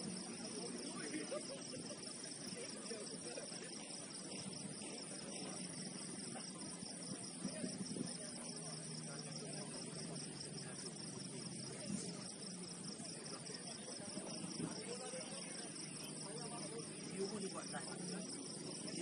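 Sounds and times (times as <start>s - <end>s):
crickets chirping: 0.0s - 19.0s
faint outdoor background noise: 0.0s - 19.0s.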